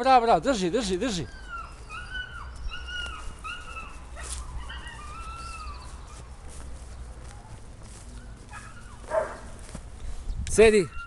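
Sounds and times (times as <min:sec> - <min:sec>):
puppy whimpering: 0:01.1 - 0:06.2.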